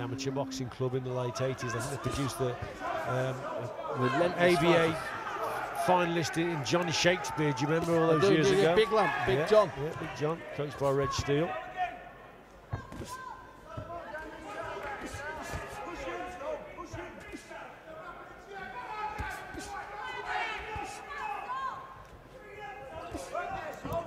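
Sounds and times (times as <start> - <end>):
crowd shouting: 1.2 - 11.0, 13.4 - 24.0.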